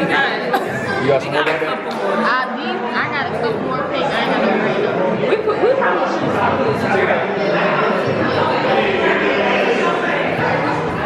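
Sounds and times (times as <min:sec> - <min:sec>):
crowd chatter indoors: 0:00.0 - 0:11.0.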